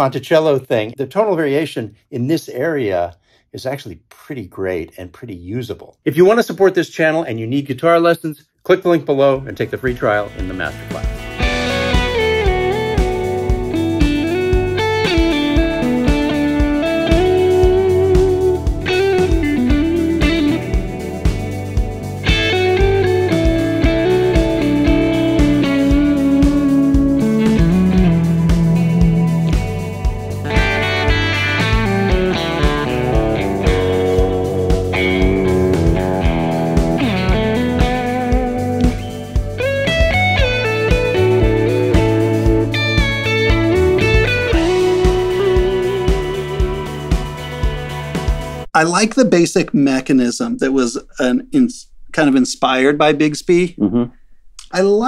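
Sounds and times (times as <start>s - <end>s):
electric guitar playing: 9.5s - 48.7s.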